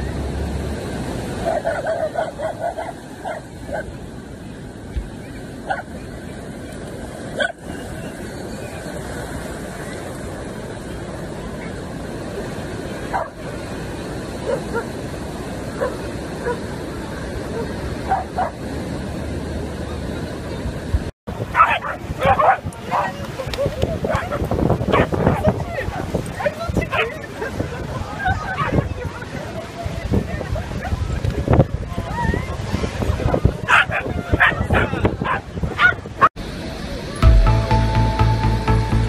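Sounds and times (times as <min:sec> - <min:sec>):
wind and surf rumble: 0:00.0 - 0:39.0
dog barking: 0:01.4 - 0:03.9, 0:13.1 - 0:13.4, 0:14.4 - 0:14.9, 0:15.8 - 0:16.6, 0:17.5 - 0:18.6, 0:21.5 - 0:23.1, 0:24.1 - 0:26.0, 0:33.7 - 0:36.0
crowd chatter: 0:19.6 - 0:38.3.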